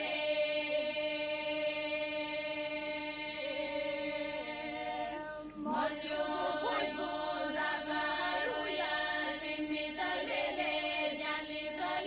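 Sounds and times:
women's choir singing over drone: 0.0 - 12.0.

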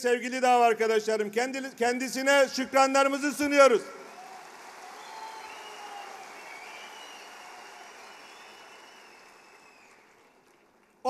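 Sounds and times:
audience applauding: 4.0 - 11.0.

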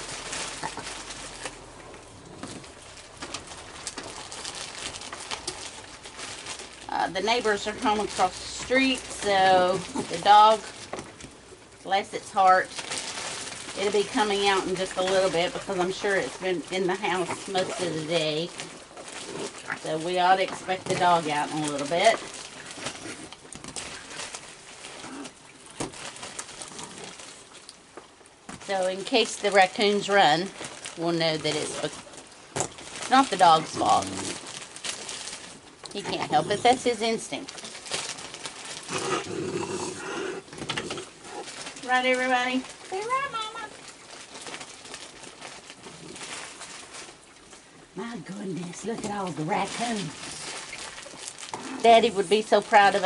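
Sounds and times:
raccoons chewing and crunching: 0.0 - 53.0.

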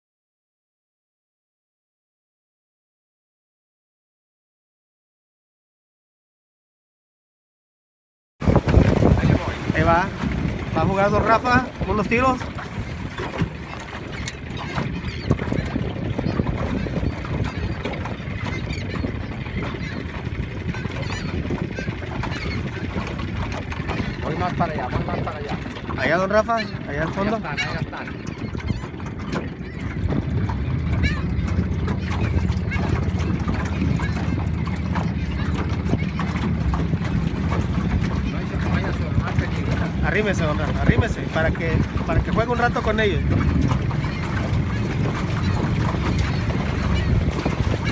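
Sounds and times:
small boat motor humming: 8.4 - 47.9
water lapping at hull: 8.4 - 47.9
wind rumbling on microphone: 8.4 - 47.9.

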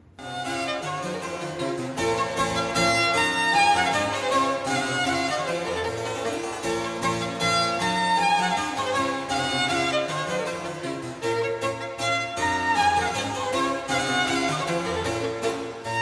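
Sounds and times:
harpsichord: 0.0 - 16.0
violin: 0.0 - 16.0.

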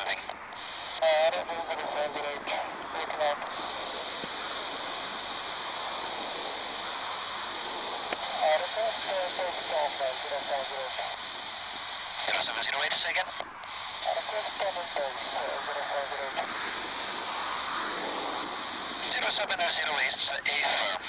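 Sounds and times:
hissy radio voice transmissions: 0.0 - 21.0.

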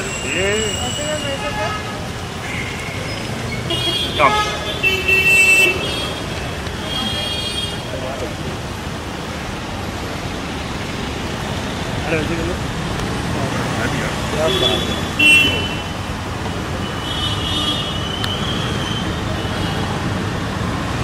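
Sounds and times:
passing cars traffic noise: 0.0 - 21.0.

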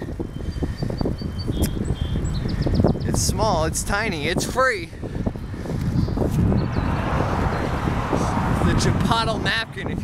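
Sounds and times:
small birds chirping: 0.0 - 3.7, 5.1 - 7.9
bicycle rumble: 0.0 - 10.0
wind buffeting microphone: 0.0 - 10.0.

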